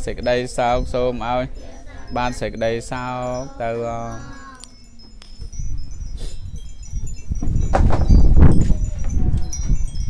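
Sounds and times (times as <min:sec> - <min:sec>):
wind chime ringing: 0:00.0 - 0:10.0.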